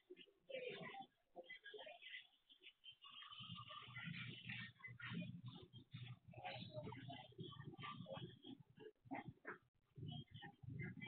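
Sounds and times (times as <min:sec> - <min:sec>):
low background murmur: 0:00.0 - 0:11.0.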